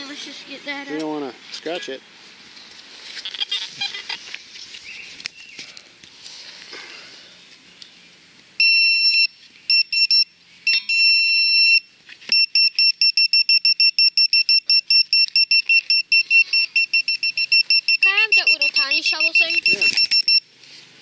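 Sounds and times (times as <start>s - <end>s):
metal detector pinpointer beeping: 8.6s - 20.5s.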